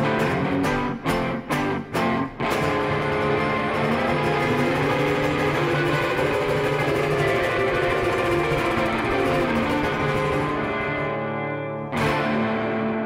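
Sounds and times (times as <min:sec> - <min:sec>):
acoustic and electric guitars: 0:00.0 - 0:13.0.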